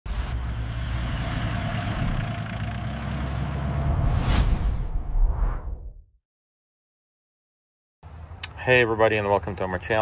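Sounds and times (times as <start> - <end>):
van engine and tyre rumble: 0.1 - 4.2.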